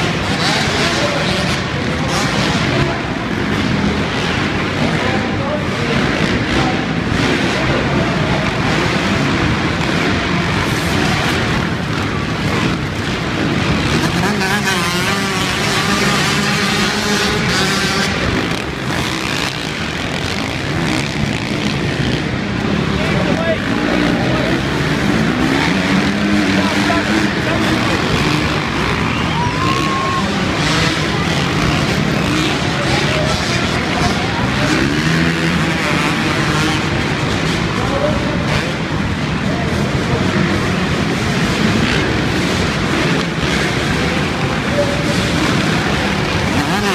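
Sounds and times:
dirt bike engines revving: 0.0s - 46.9s.

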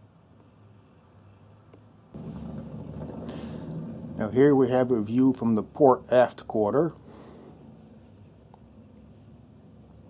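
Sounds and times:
low-pitched hum: 2.2s - 5.8s.

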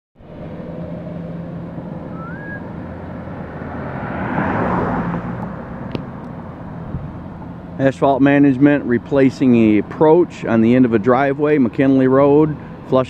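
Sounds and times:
road noise: 0.2s - 13.0s
vehicle engine running: 0.2s - 13.0s
short rising whistle: 2.0s - 2.8s.

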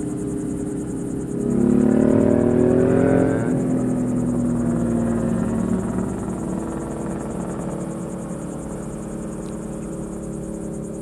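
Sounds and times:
passing vehicle engine hum: 0.0s - 11.0s.

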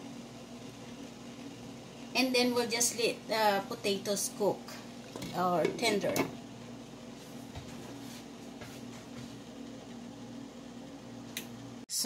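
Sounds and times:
faint hiss from boiling pot: 0.0s - 12.0s
steady low hum: 0.0s - 12.0s.

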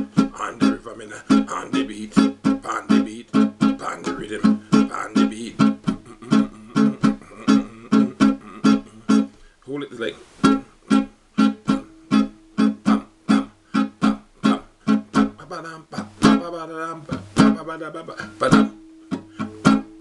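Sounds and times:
guitar strummed in choppy rhythm: 0.0s - 9.6s, 10.4s - 20.0s.

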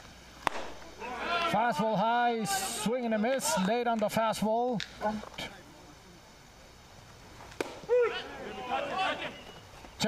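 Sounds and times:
baseball smacking into mitt: 0.4s - 0.8s, 7.5s - 7.9s
people shouting: 0.8s - 3.0s, 7.8s - 9.6s.

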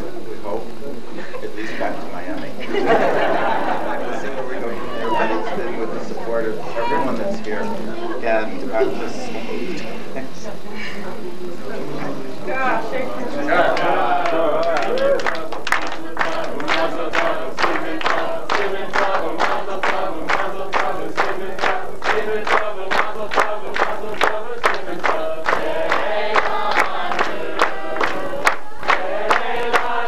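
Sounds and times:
group singing: 12.1s - 30.0s
rhythmic clapping: 13.5s - 30.0s.

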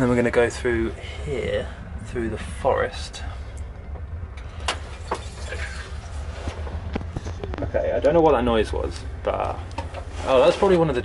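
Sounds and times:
cable car gondola rumble: 0.0s - 11.0s
faint scraping noise: 4.4s - 7.5s, 9.8s - 11.0s.

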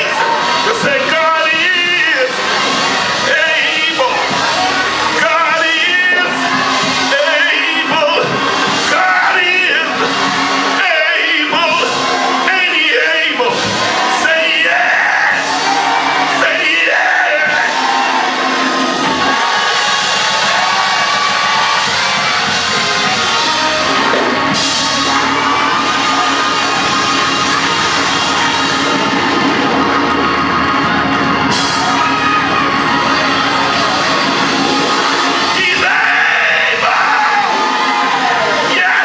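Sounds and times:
congregation shouting and whooping: 0.0s - 39.0s
live church music: 0.0s - 39.0s.

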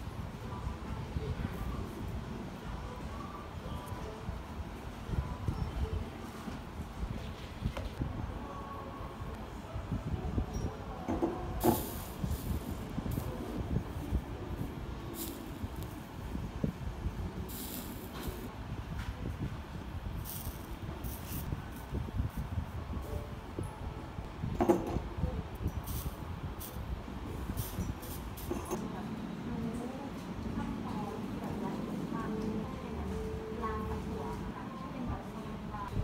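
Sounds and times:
steady low rumble: 11.4s - 34.2s
solder sizzling and crackling: 11.6s - 16.5s, 17.1s - 18.5s, 20.1s - 22.5s.

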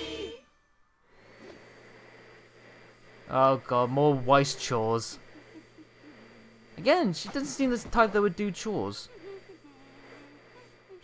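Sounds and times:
low hum: 0.0s - 11.0s
thin high whine: 0.0s - 11.0s.

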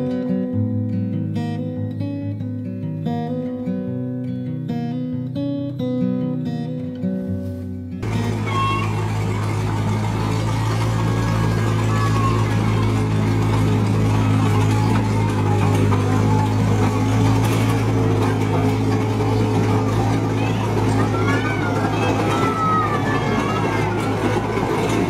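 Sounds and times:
small train engine running: 8.0s - 25.0s.

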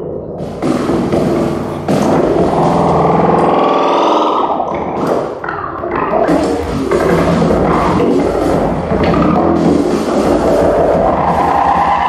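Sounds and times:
noisy electronic synthesizer textures: 0.0s - 12.0s
buzzing synthesizer tone: 0.4s - 12.0s.

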